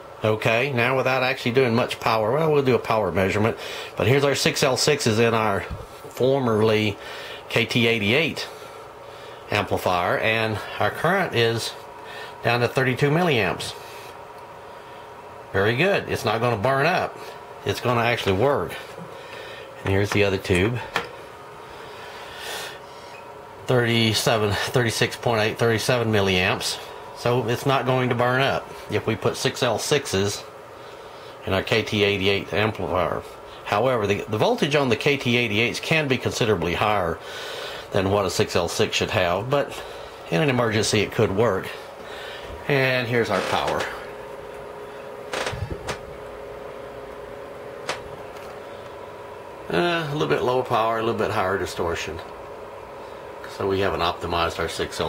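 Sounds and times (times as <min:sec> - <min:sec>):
short breath: 0:03.6 - 0:04.0, 0:07.0 - 0:07.5, 0:12.0 - 0:12.4, 0:18.9 - 0:19.8.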